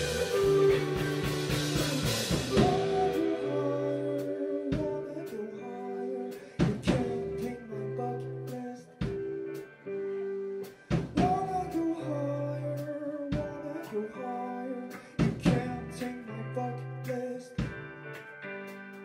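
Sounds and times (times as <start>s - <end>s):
drums striking heavy accents: 0.0s - 5.1s, 6.6s - 7.5s, 9.0s - 9.3s, 10.7s - 11.8s, 15.2s - 16.0s
person singing: 0.0s - 9.6s, 11.2s - 17.8s
electric guitar and bass chords: 0.0s - 19.0s.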